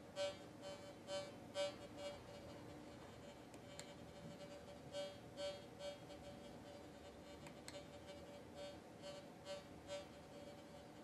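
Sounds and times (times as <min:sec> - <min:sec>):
faint steady tone: 0:00.0 - 0:11.0
metal detector buzzy beeps: 0:00.1 - 0:11.0.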